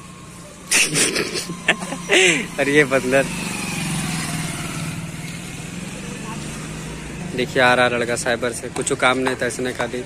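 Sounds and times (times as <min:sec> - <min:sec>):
small motorcycle engine passing: 0:00.0 - 0:08.4.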